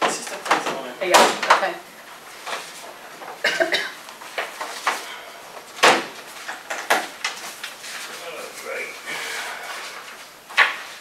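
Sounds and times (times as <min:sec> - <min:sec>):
person coughing: 0:03.4 - 0:04.0.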